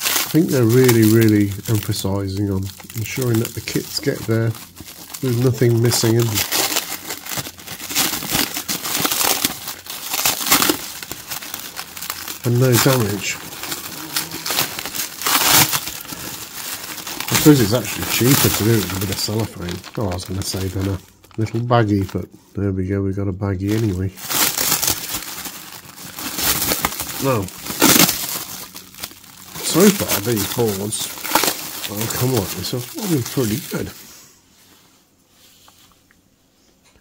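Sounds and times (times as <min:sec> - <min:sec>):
cellophane crinkling: 0:00.0 - 0:22.3, 0:23.6 - 0:34.2.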